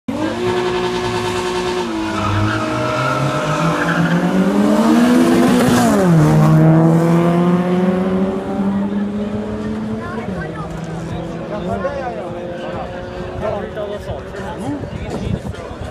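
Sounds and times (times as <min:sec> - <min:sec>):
race car engine passing by: 0:00.1 - 0:14.5.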